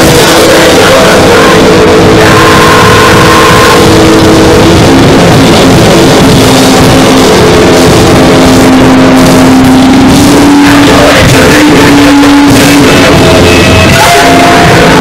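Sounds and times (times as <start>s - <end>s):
harsh distorted noise music: 0.0s - 15.0s.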